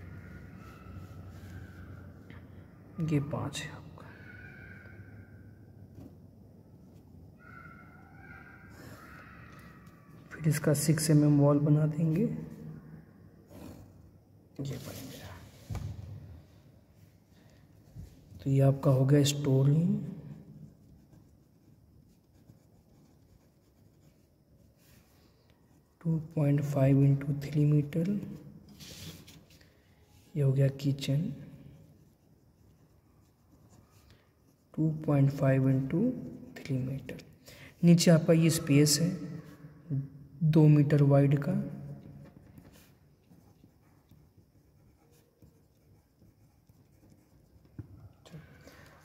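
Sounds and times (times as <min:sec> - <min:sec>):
pencil scratching on paper: 0:18.0 - 0:39.7, 0:41.0 - 0:49.0.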